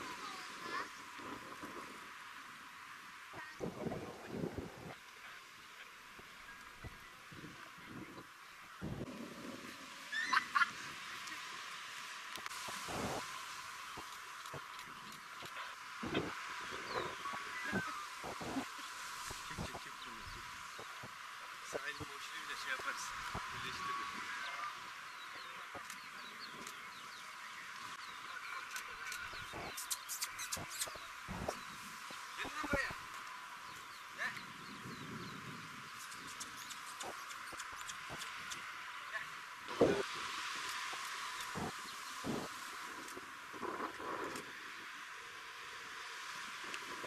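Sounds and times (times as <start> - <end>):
steady hiss: 0.0 - 47.0.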